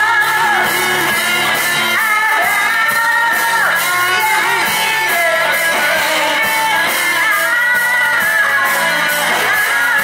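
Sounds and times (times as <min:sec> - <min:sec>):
bass: 0:00.0 - 0:10.0
drums: 0:00.0 - 0:10.0
electric guitar: 0:00.0 - 0:10.0
woman singing: 0:00.0 - 0:10.0.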